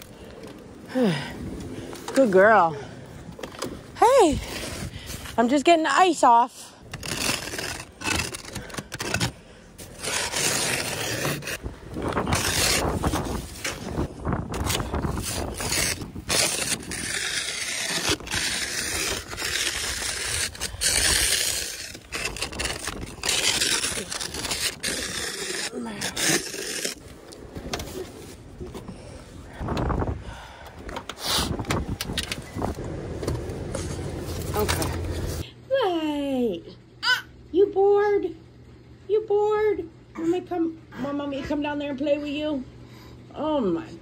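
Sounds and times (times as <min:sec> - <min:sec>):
snow brush scraping ice off car: 0:09.8 - 0:11.6, 0:12.2 - 0:14.0, 0:14.8 - 0:27.0.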